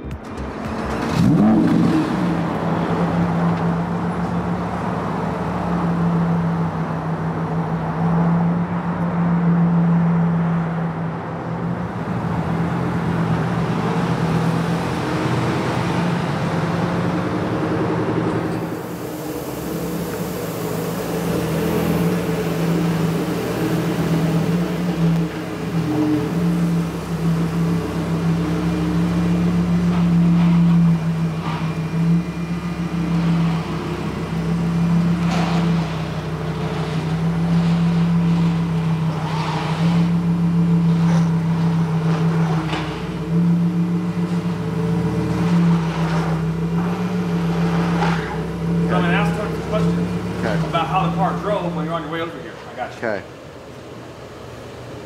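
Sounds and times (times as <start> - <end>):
car engine idling: 0.0 - 9.2, 10.3 - 55.0.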